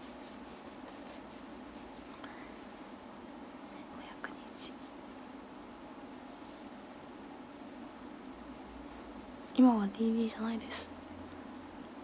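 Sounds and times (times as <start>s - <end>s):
cotton pad rubbing skin: 0.0s - 2.2s
low steady hum: 0.0s - 12.0s.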